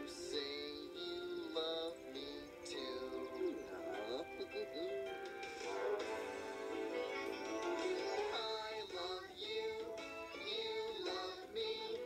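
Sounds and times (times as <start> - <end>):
children's song through tv speaker: 0.0 - 12.0.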